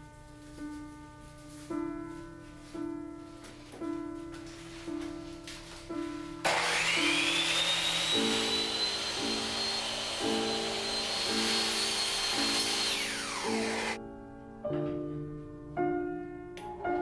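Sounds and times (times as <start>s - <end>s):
piano music: 0.0s - 6.5s, 7.8s - 17.0s
miter saw cutting bread: 6.5s - 14.0s.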